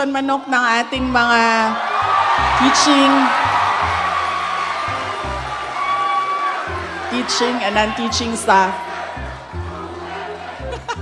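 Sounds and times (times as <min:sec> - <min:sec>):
audience laughing and cheering: 0:00.5 - 0:11.0
background music with low bass: 0:00.9 - 0:11.0.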